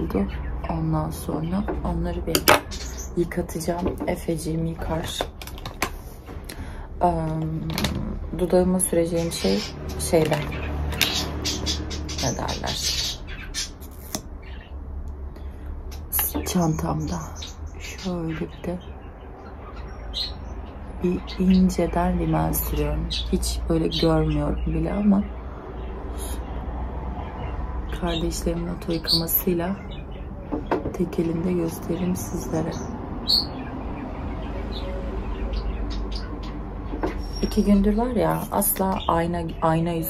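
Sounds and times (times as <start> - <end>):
bird chirping: 0.0 - 5.4, 7.2 - 14.8, 15.4 - 26.6, 27.2 - 40.0
low steady background hum: 0.0 - 40.0.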